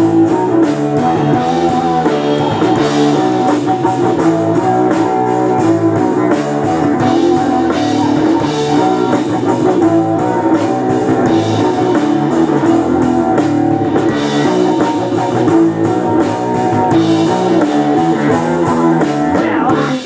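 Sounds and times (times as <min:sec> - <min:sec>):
drum kit: 0:00.0 - 0:20.0
electric guitar chords: 0:00.0 - 0:20.0.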